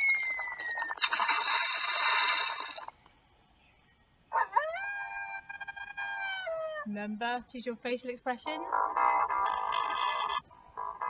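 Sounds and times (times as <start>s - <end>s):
wolf howl: 4.4s - 6.9s.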